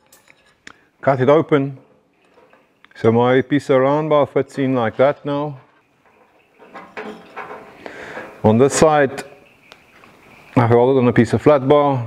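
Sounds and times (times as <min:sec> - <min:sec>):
small steel parts clicking: 0:00.0 - 0:00.8.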